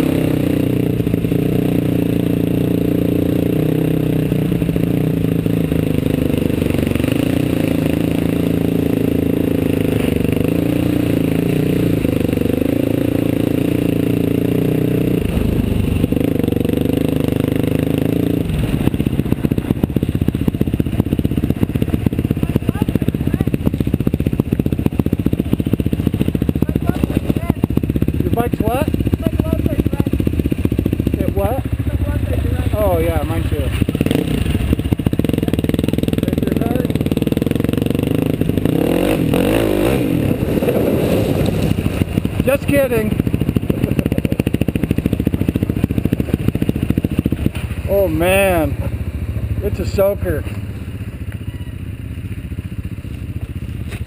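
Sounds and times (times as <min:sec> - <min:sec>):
quad engine running: 0:00.0 - 0:54.0.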